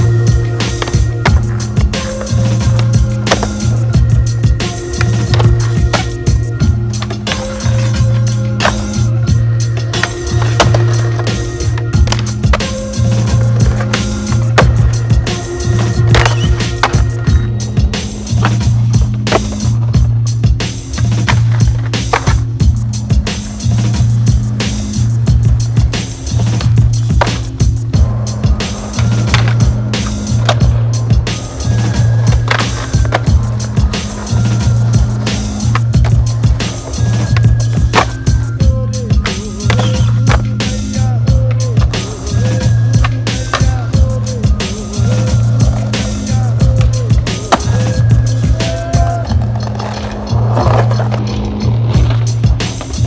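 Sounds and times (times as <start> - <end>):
music with deep bass line: 0.0 - 53.0
skateboard clacks: 0.0 - 53.0
skateboard wheels rolling on concrete: 0.0 - 53.0.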